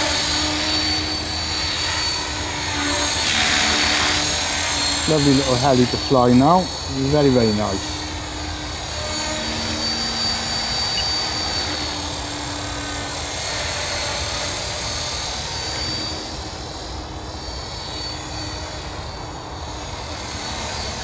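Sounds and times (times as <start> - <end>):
rc helicopter motor whine: 0.0 - 21.0
rotors whirring: 0.0 - 21.0.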